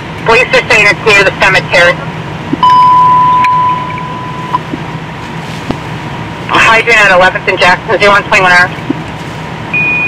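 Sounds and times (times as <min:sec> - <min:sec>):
low hum: 0:00.0 - 0:10.0
steady radio tone: 0:06.5 - 0:09.0.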